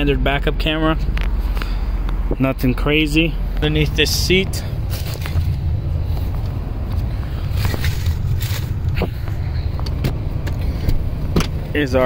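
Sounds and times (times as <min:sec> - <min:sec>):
steady low rumble: 0:00.0 - 0:12.0
seat latch clicks and knocks: 0:09.8 - 0:11.7.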